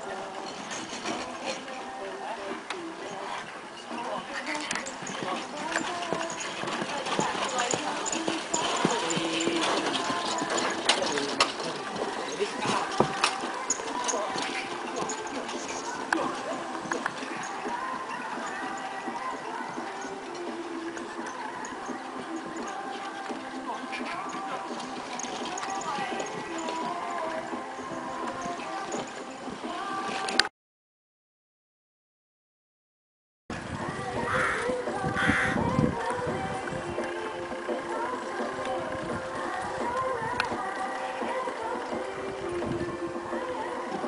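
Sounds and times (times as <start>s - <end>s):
people talking: 0.0s - 29.1s
pony hoofbeats trotting on sand: 0.0s - 30.4s, 33.5s - 44.0s
background voices: 0.0s - 30.5s, 33.6s - 44.0s
music: 0.0s - 30.5s, 33.5s - 44.0s.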